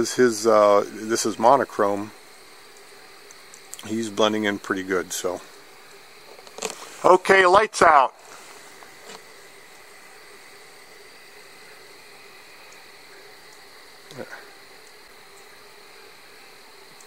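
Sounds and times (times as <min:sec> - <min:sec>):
constant hiss: 0:00.0 - 0:17.0
night insects chorus: 0:00.0 - 0:17.0.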